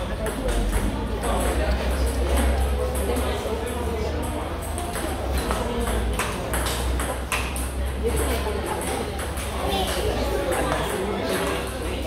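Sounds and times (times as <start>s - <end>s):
table tennis ball clicks: 0.2s - 11.8s.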